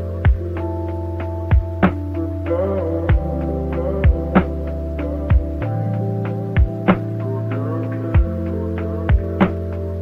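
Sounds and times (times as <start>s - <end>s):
low synth chords: 0.0s - 10.0s
deep drum hits: 6.6s - 7.0s.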